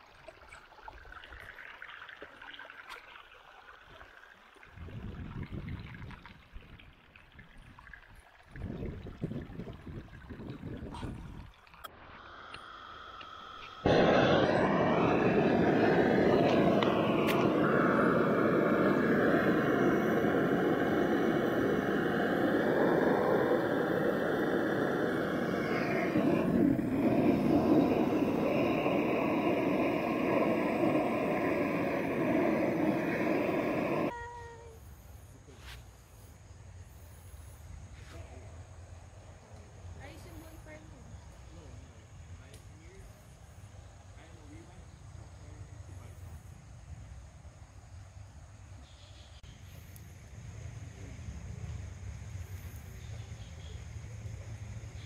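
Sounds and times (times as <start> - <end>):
water trickling over stones: 0.0 - 13.8
torch flame jet roaring: 12.0 - 34.1.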